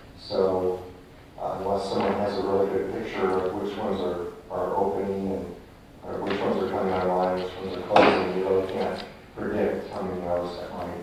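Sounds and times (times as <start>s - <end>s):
person speaking: 0.2s - 11.0s.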